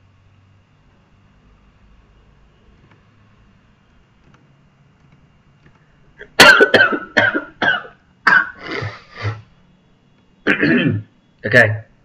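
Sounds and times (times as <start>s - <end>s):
person coughing: 6.2s - 9.4s, 10.5s - 11.1s.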